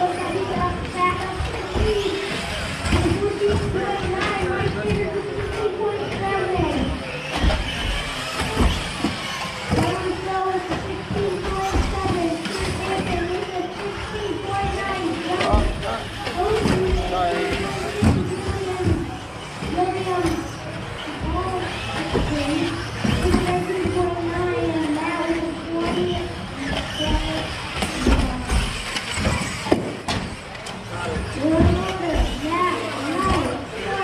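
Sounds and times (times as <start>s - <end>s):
electric toy car motors whining: 0.0s - 34.0s.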